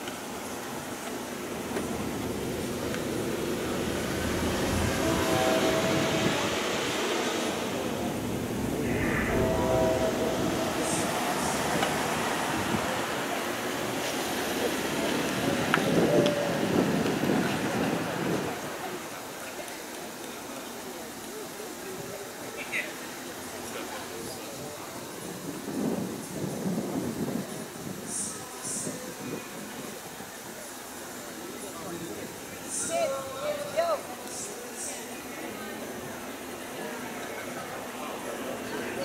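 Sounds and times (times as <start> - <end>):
passing vehicle traffic rumble: 0.2 - 19.5.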